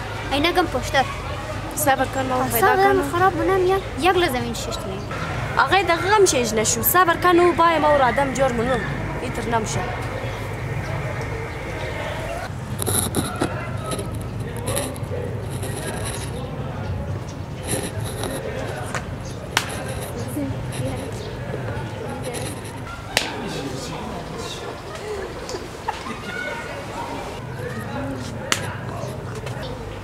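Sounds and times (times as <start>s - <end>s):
faint voices: 0.0s - 30.0s
people talking: 0.0s - 30.0s
road traffic rumble: 0.0s - 30.0s.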